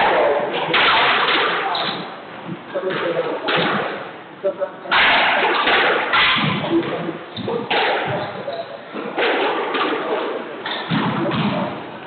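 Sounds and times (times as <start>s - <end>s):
ball hitting court walls: 0.0s - 2.1s, 2.8s - 4.0s, 4.9s - 11.9s
squash ball hit with rackets: 0.0s - 2.1s, 2.9s - 4.0s, 4.9s - 8.4s, 9.0s - 11.8s.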